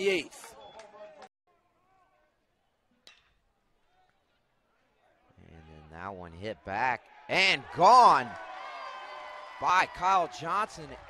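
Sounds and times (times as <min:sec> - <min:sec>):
faint ballpark ambience: 0:00.0 - 0:11.0.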